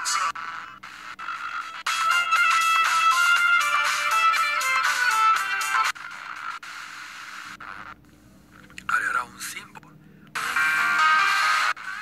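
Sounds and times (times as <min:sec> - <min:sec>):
radio music: 0:00.0 - 0:03.1, 0:04.0 - 0:09.8
radio static hiss: 0:06.0 - 0:10.5.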